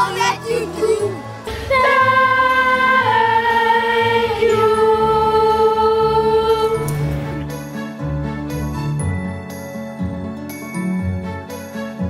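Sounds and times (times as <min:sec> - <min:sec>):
choir singing held notes: 0:00.0 - 0:07.7.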